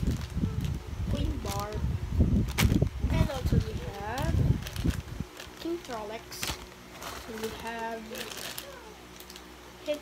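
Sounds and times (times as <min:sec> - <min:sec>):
plastic wrapper crinkling: 0:00.0 - 0:01.8, 0:02.4 - 0:09.6.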